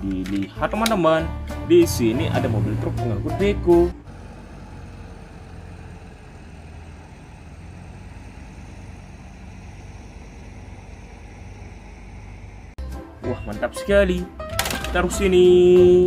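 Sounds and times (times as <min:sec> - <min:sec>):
excavator diesel engine running: 0:02.2 - 0:13.5.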